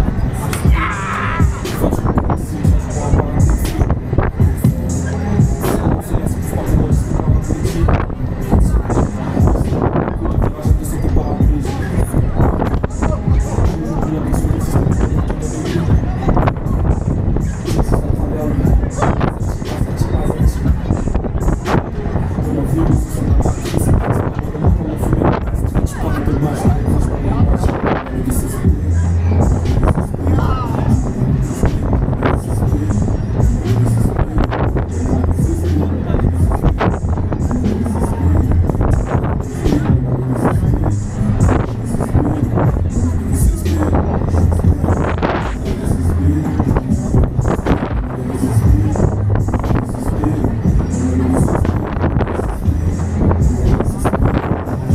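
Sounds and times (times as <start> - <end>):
fairground ride music: 0.0 - 54.9
low rumble of ride in motion: 0.0 - 54.9
voices: 0.0 - 54.9.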